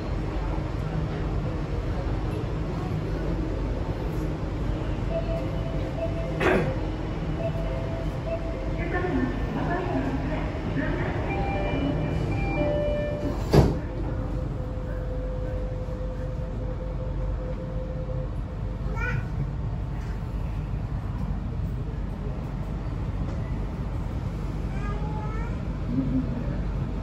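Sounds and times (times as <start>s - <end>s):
train car hum: 0.0s - 27.0s.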